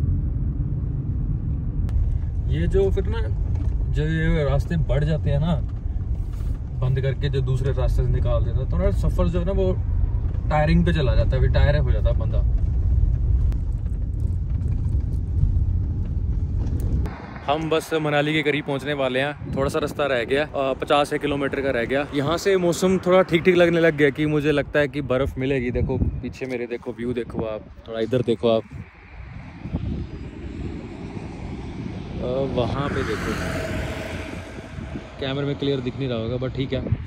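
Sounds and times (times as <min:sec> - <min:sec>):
car driving heard from inside: 0:00.0 - 0:24.6, 0:29.4 - 0:37.0.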